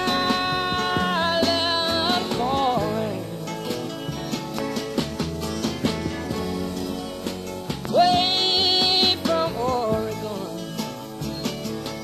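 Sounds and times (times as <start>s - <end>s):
acoustic guitar backing: 0.0s - 12.0s.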